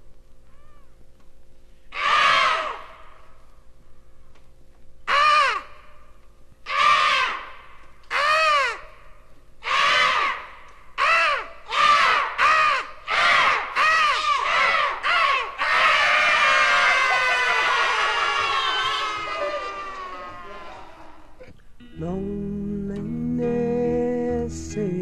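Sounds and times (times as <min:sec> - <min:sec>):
faint steady hum: 0:00.0 - 0:25.0
crow cawing: 0:02.0 - 0:03.2, 0:05.1 - 0:06.0, 0:06.7 - 0:18.4.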